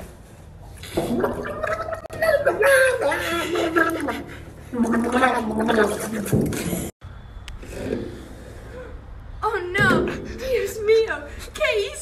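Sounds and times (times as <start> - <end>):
boy gargling in water: 1.0 - 6.5.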